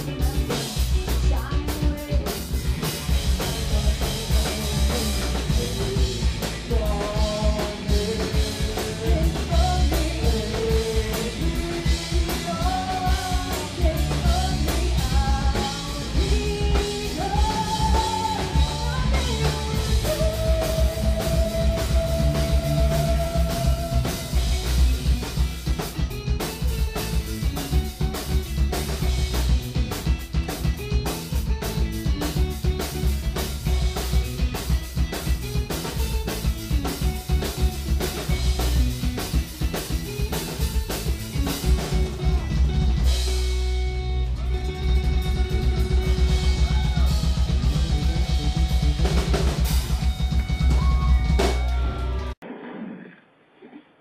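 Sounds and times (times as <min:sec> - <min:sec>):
fast drum kit beats: 0:00.0 - 0:52.4
heavy rock band playing: 0:00.0 - 0:52.4
electric guitars: 0:00.0 - 0:53.9.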